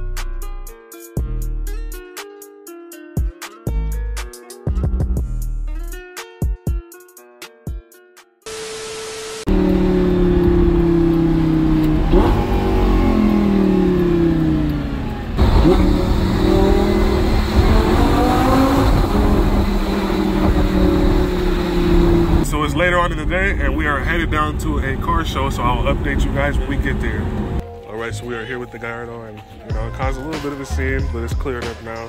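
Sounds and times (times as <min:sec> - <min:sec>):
car engine from inside cabin: 0:08.7 - 0:27.6.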